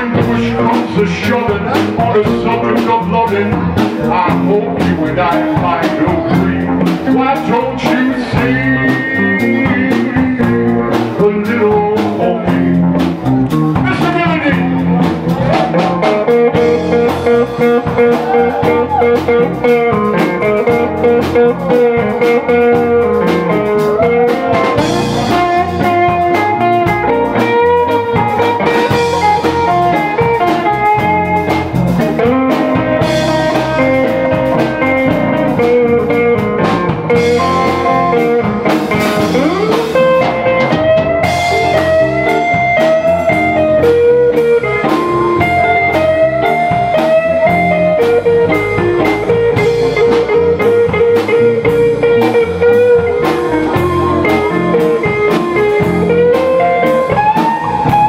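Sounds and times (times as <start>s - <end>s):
live blues band playing: 0.0s - 58.0s.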